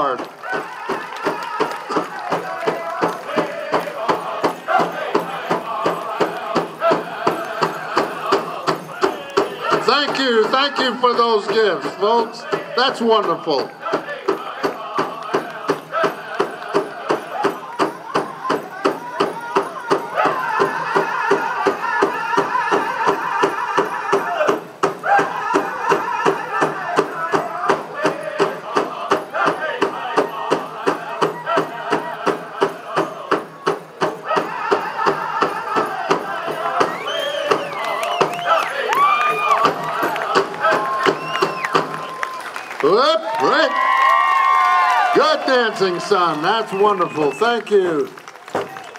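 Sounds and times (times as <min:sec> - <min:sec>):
drum group singing: 0:00.0 - 0:42.6
big hand drum beating: 0:00.2 - 0:42.1.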